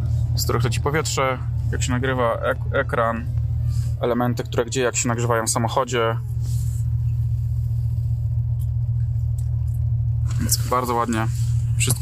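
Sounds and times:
car engine idling: 0.0 - 12.0.

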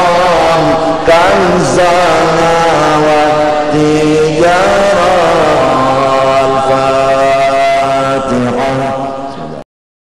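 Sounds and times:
man chanting in long held notes: 0.0 - 9.6.

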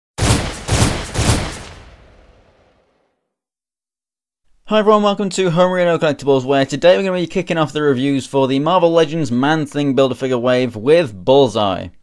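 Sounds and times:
heavy gunshot-like hits: 0.2 - 2.9.

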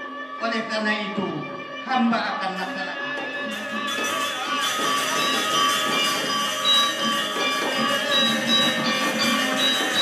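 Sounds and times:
metallophones ringing: 2.0 - 10.0.

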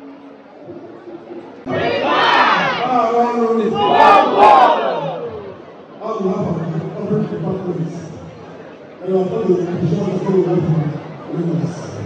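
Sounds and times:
crowd shouting: 1.7 - 5.7.

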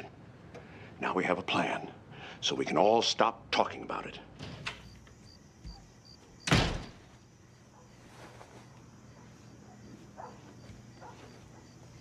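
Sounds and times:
front door slamming: 5.7 - 7.1.

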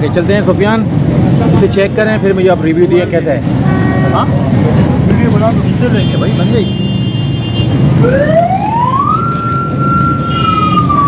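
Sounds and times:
street traffic rumble: 0.0 - 11.0
siren wailing: 8.0 - 11.0.

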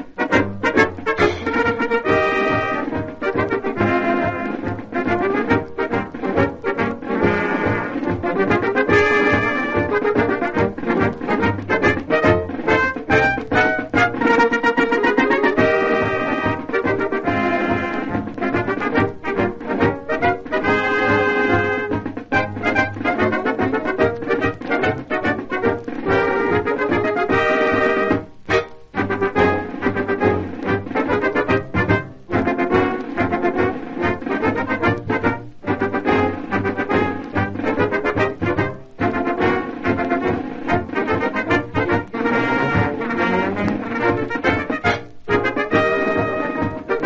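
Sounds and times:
brass band music: 0.0 - 47.0.

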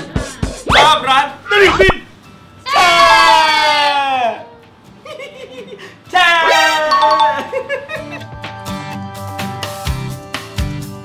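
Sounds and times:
chime-like jingle: 6.9 - 8.1.

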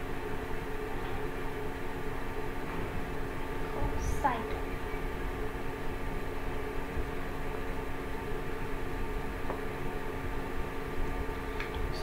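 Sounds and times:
machine hum with steady tones: 0.0 - 12.0.

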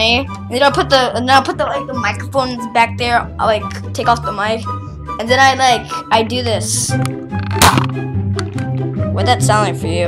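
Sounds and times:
background music with bass line: 0.0 - 10.0
toy dart blaster snap: 7.5 - 8.0.

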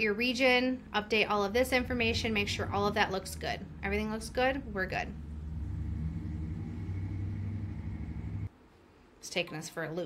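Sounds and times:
low rumble: 0.8 - 8.5
faint high whine: 1.5 - 8.5.

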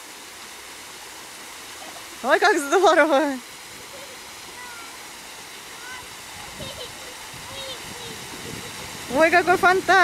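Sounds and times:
fountain water spraying and splashing: 0.0 - 10.0.

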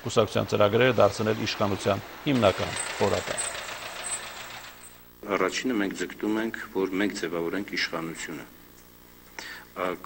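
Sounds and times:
minibus driving past: 0.0 - 5.0.

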